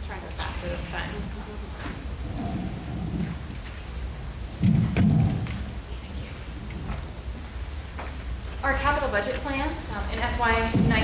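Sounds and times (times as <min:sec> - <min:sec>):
microphone handling noise: 0:01.6 - 0:08.4.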